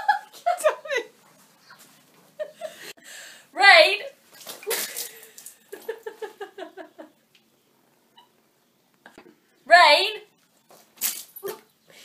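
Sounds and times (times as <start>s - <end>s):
laughter: 0.0s - 1.2s, 2.4s - 3.0s, 5.7s - 7.2s
water splash: 4.3s - 5.5s.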